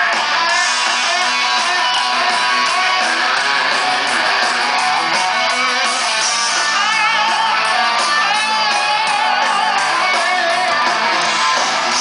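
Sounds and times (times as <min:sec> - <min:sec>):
live rock band playing loud: 0:00.0 - 0:12.0.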